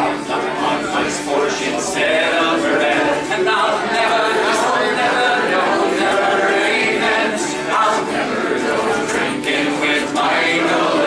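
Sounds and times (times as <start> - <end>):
group singing: 0.0 - 11.0
string instrument playing: 0.0 - 11.0.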